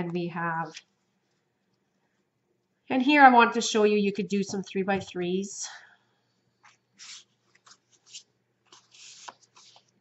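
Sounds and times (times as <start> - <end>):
paper rustling and sliding: 6.7 - 10.0.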